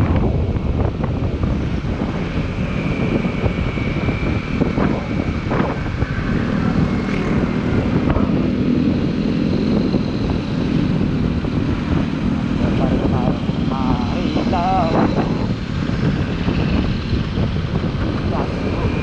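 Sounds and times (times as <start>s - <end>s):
road noise: 0.0s - 19.0s
scooter engine humming: 0.0s - 19.0s
wind on microphone: 0.0s - 19.0s.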